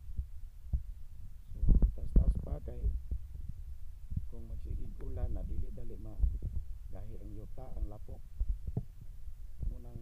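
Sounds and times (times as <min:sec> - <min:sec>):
low rumble on microphone: 0:00.0 - 0:10.0.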